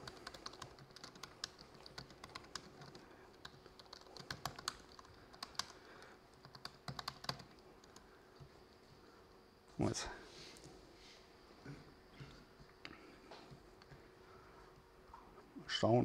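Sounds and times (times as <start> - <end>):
laptop keyboard typing: 0.0 - 8.5.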